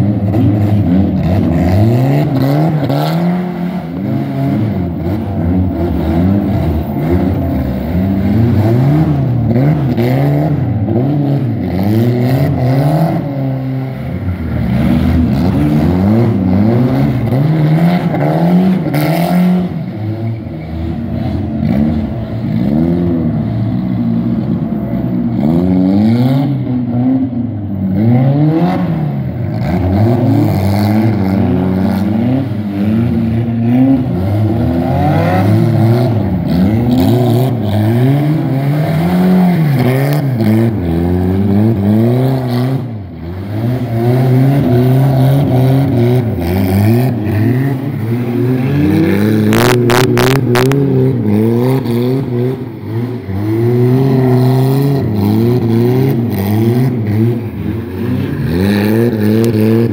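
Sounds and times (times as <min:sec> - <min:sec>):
car engines revving: 0:00.0 - 0:59.9.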